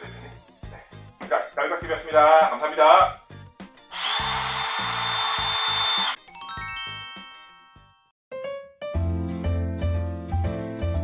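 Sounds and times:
impact driver whine: 3.9 - 6.2
falling chime notes: 6.2 - 8.1.

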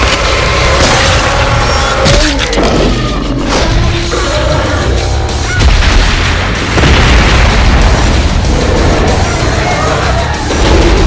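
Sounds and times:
background music: 0.0 - 11.0
explosion boom: 5.6 - 9.5.

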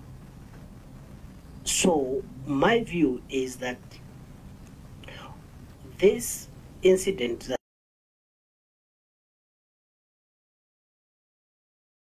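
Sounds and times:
low room hum: 0.0 - 7.6
faint breath: 5.0 - 5.4.

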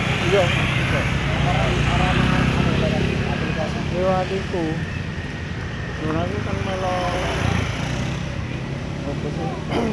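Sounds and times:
people talking: 9.1 - 9.9.

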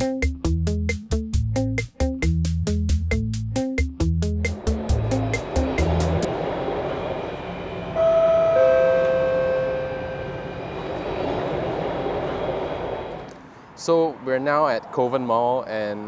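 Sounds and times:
background music with a beat: 0.0 - 6.3
steady tones: 4.2 - 14.1
train carriage running noise: 4.3 - 14.2.

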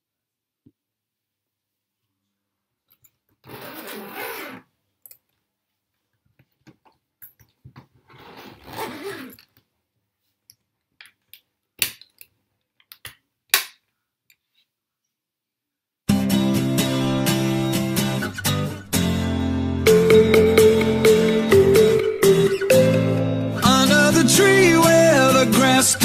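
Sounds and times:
suitcase zipper rasping: 3.4 - 4.7, 8.0 - 9.5.

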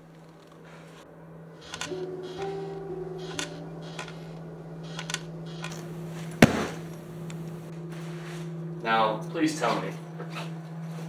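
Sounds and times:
steady low hum: 0.0 - 11.0
bag thudding on concrete floor: 6.4 - 6.9.

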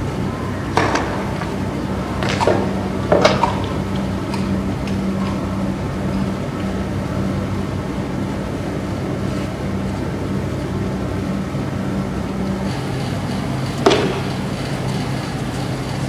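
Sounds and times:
vehicle engine idling: 0.0 - 16.0.

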